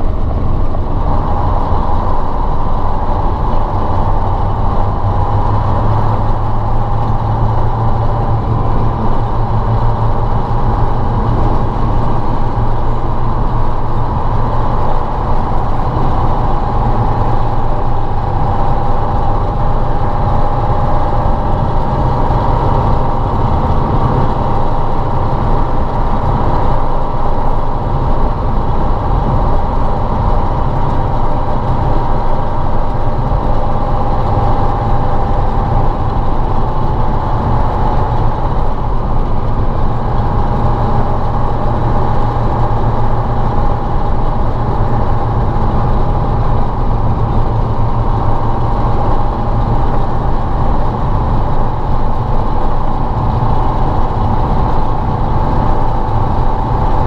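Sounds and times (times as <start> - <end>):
diesel truck engine running: 0.0 - 57.0.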